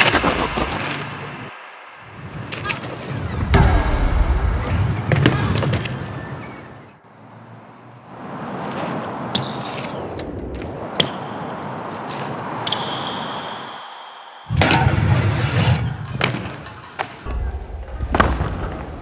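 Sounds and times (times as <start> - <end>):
loud rough scraping impact: 0.0 - 5.9.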